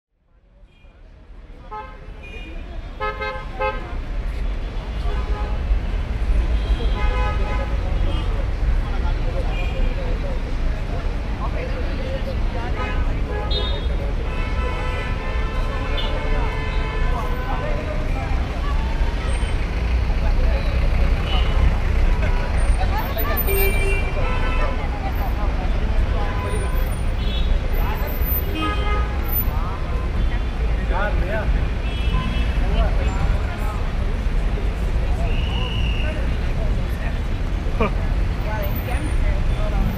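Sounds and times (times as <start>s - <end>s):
passers-by chattering: 0.1s - 39.9s
low traffic rumble: 0.2s - 39.9s
car horns honking: 31.8s - 32.8s.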